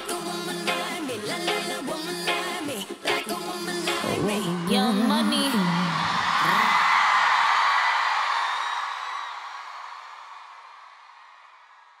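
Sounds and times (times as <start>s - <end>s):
arena crowd cheering and screaming: 4.0s - 12.0s.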